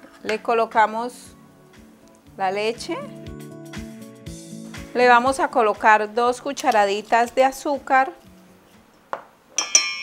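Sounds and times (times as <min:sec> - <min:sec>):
metal spoon clinking on bowl: 0:09.6 - 0:10.0.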